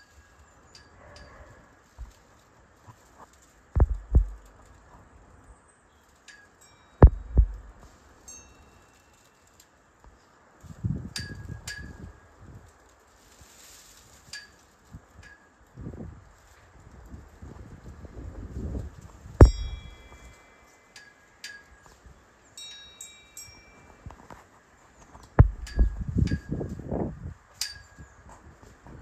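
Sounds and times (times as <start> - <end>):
low wind rumble: 3.6 - 5.4, 7.0 - 7.9, 10.6 - 12.7, 15.0 - 20.9, 25.2 - 29.0
metal clip striking flagpole: 7.0 - 7.8, 19.4 - 20.4, 25.4 - 26.6
metallic chime pings: 19.4 - 21.9, 22.6 - 24.1.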